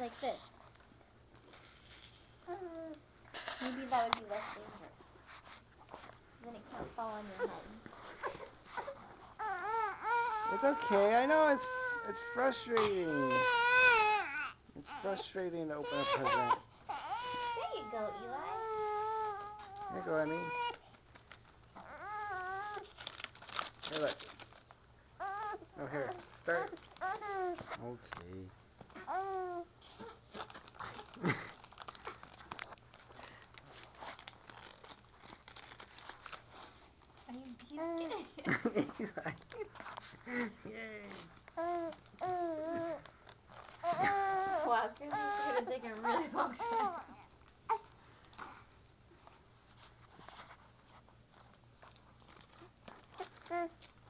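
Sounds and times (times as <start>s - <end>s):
baby fussing: 7.4s - 20.8s, 43.8s - 48.6s.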